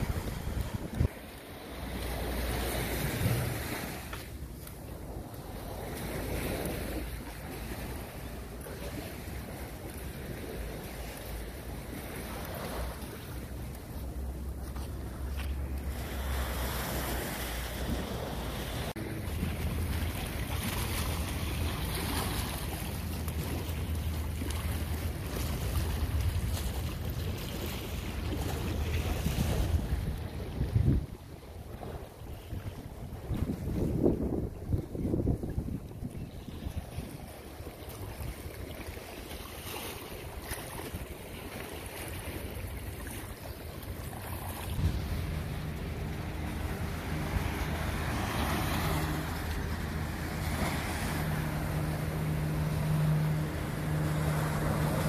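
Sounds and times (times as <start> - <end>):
wind buffeting microphone: 0.0 - 39.4, 40.0 - 55.0
boat engine drone: 0.0 - 55.0
ocean surf: 0.0 - 55.0.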